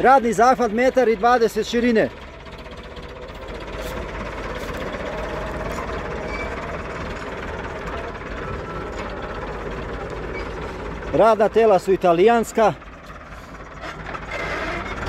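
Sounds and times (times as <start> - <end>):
tractor diesel engine under load: 0.0 - 15.0.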